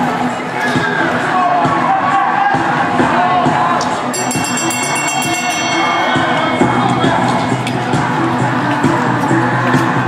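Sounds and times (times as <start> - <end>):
crowd noise: 0.0 - 10.0
music: 0.0 - 10.0
hand bell ringing rapidly: 4.1 - 8.5.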